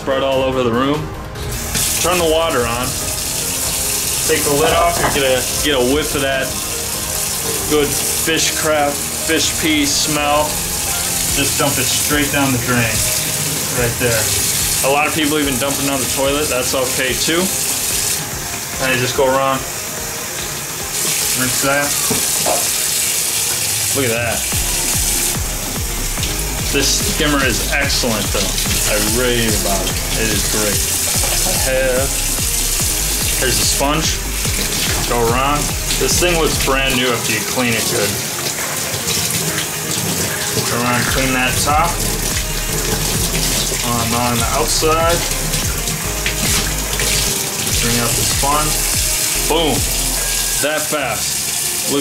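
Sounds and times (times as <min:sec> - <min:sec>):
water running from faucet: 0:00.0 - 0:52.0.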